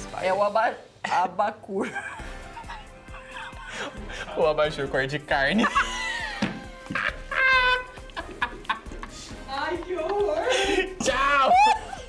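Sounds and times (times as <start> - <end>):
people laughing: 1.8 - 4.7, 5.4 - 12.0
high-pitched squealing laugh: 5.7 - 8.0.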